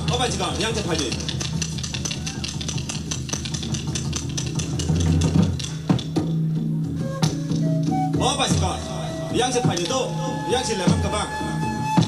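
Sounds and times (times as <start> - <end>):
quick steady percussion: 0.0 - 8.8.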